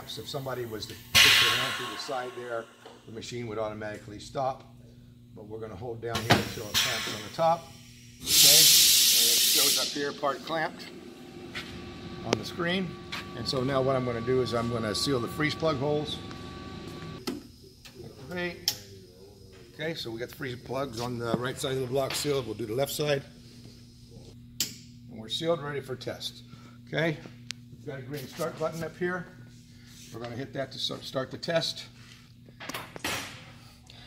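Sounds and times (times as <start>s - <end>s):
faint machine hum: 0.0s - 34.0s
sharp clack: 1.2s - 3.0s
compressed air hiss: 6.2s - 10.4s.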